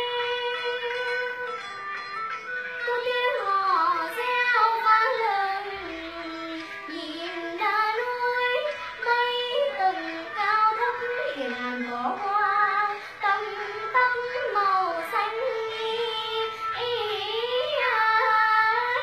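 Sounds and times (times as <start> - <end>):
girl singing folk song: 0.0 - 1.6, 2.8 - 19.0.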